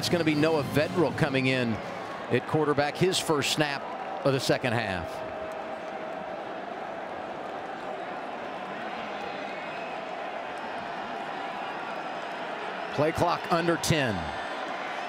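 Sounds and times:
stadium crowd murmur: 0.0 - 15.0.

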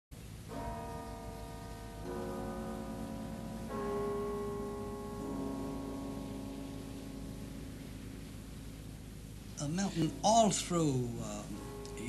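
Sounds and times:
tower bells ringing: 0.4 - 12.0.

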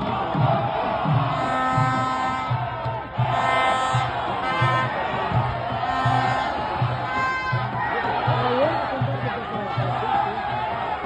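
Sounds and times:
football fans chanting: 0.0 - 11.0
steady drum beat: 0.0 - 11.0.

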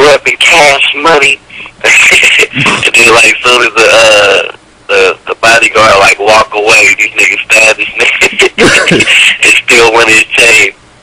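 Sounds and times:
men talking and laughing: 1.8 - 3.3, 7.5 - 9.9.

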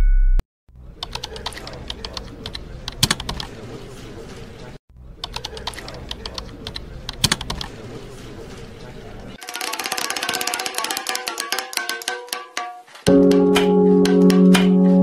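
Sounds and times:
keyboard typing: 1.0 - 3.6, 5.2 - 7.8.

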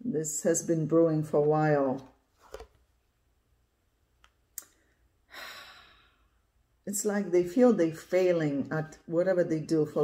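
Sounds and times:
woman sighing softly: 5.3 - 6.2.

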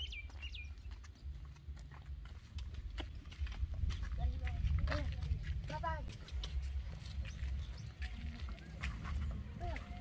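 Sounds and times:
footsteps on dirt path: 0.0 - 10.0.

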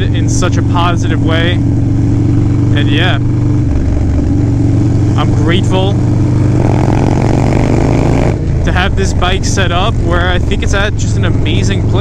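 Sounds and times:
motorcycle engine at road speed: 0.0 - 12.0.

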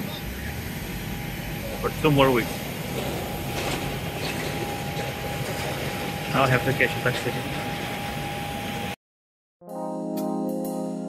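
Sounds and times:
steady low rumble: 0.0 - 9.0
man speaking: 1.8 - 2.6, 6.3 - 7.7.

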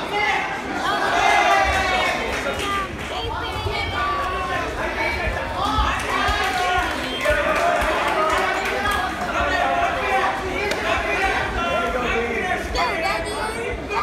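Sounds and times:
crowd chatter: 0.0 - 14.0.

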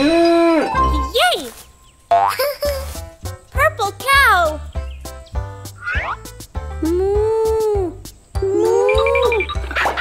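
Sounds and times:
bouncy cartoon music: 0.4 - 1.4, 2.1 - 10.0
cartoon baby vocal sounds: 6.8 - 9.5.

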